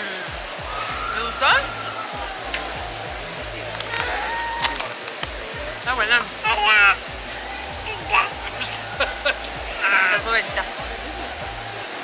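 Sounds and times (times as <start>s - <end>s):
faint music: 0.0s - 12.0s
steady rushing noise: 0.0s - 12.0s
woman's voice: 1.1s - 1.7s, 9.8s - 10.7s.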